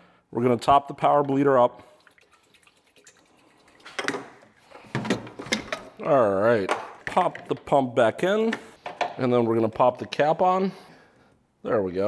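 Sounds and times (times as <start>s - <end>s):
liquid trickling into bottle: 1.8s - 4.8s
can and bottle clattering: 2.1s - 6.0s.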